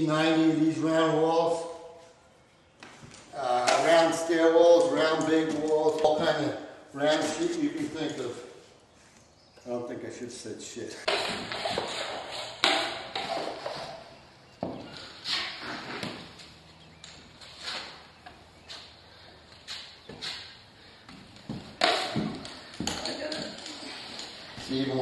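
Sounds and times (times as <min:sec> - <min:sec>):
taping knife scraping drywall: 0:11.0 - 0:14.0, 0:15.0 - 0:16.3.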